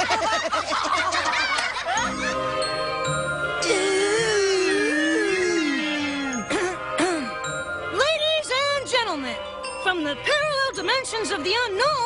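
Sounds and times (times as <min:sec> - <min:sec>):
tinkling chime-like music: 0:01.9 - 0:12.0.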